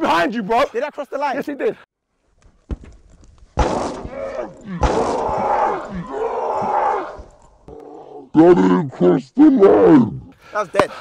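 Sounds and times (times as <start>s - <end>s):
young men laughing and shouting: 0.0s - 1.8s.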